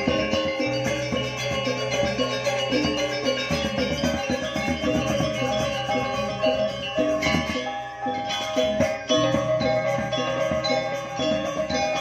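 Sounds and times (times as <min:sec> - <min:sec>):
gamelan ensemble playing: 0:00.0 - 0:12.0.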